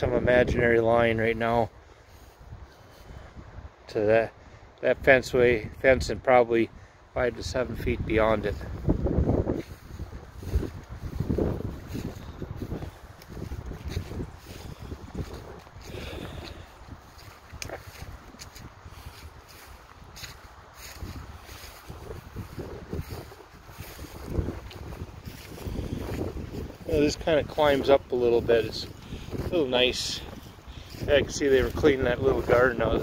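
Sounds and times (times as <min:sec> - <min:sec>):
wind buffeting microphone: 0:00.0 - 0:03.9, 0:05.0 - 0:33.0.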